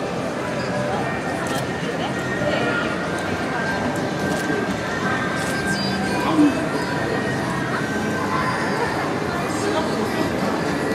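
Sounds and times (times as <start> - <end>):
hubbub of many voices: 0.0 - 10.9.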